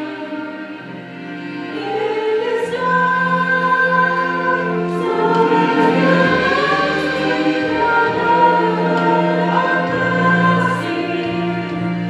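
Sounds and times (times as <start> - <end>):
choir singing long held notes: 0.0 - 12.0.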